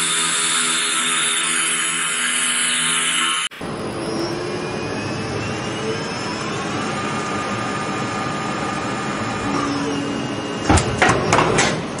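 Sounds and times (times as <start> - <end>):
machine running: 0.0 - 10.6.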